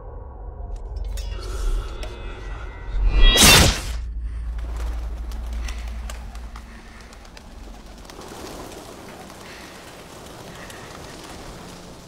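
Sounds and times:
low rumble: 0:00.0 - 0:08.2
pigeons flapping wings: 0:04.6 - 0:12.0.

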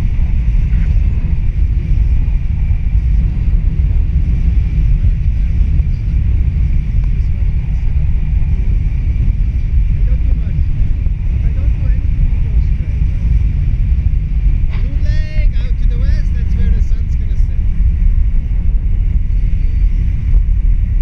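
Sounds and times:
wind rushing over microphone: 0:00.0 - 0:21.0.

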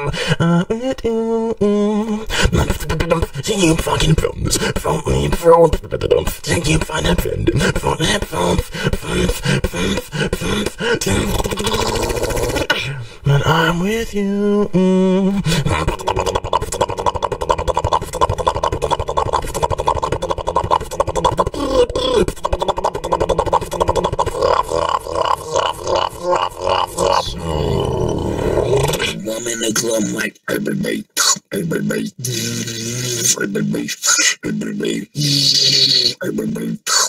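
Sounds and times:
person beatboxing: 0:02.0 - 0:13.6, 0:14.8 - 0:27.8, 0:30.1 - 0:37.0.

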